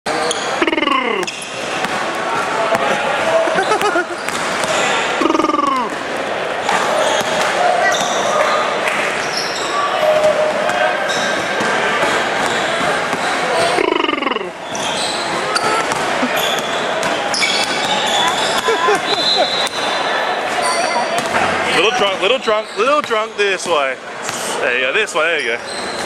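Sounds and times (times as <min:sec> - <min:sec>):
shoe squeals: 0:00.1 - 0:01.7, 0:06.6 - 0:13.9, 0:14.6 - 0:24.6, 0:25.2 - 0:26.0
voices in background: 0:00.1 - 0:26.0
basketballs bouncing on hardwood: 0:07.0 - 0:08.3, 0:14.7 - 0:19.8.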